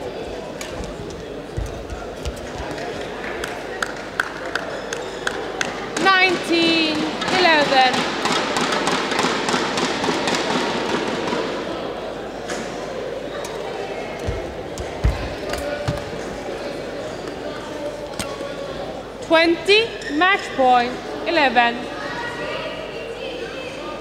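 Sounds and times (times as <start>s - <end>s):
crowd noise in a hall: 0.0s - 24.0s.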